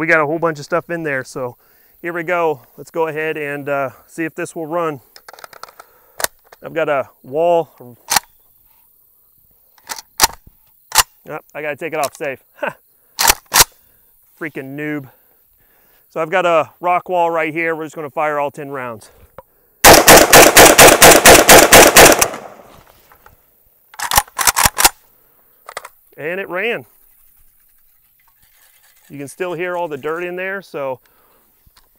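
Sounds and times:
rifle mechanism clicks: 13.2s - 13.7s, 19.9s - 22.6s, 23.9s - 25.0s
quieter sharp shots: 19.8s - 22.7s.

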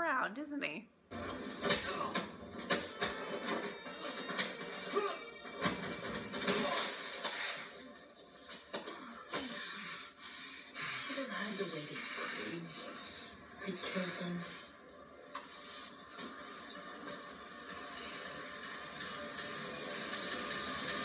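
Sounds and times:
tense background music: 1.1s - 21.0s.

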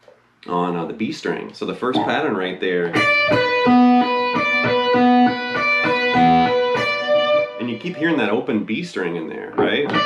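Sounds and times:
electric guitar melodic figure: 2.8s - 8.7s, 9.5s - 10.0s.

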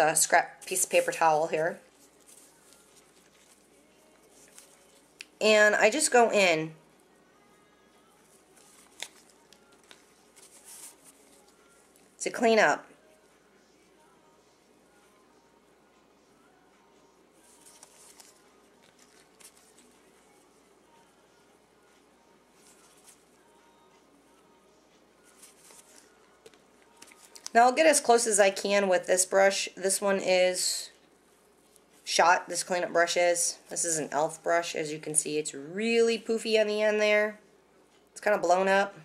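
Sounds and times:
brush scratching on skin: 8.5s - 11.7s.

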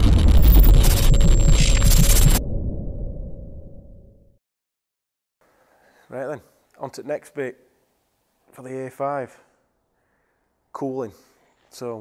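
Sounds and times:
steady held tone: 0.0s - 4.0s
deep rumble: 0.0s - 4.3s.

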